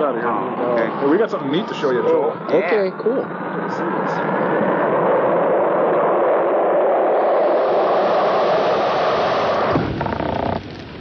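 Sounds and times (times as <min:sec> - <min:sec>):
rocket engine roar: 0:00.0 - 0:11.0.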